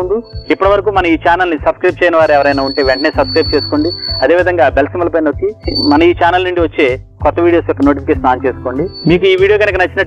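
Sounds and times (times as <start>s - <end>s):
background music: 0.0s - 10.0s
man talking: 0.0s - 10.0s.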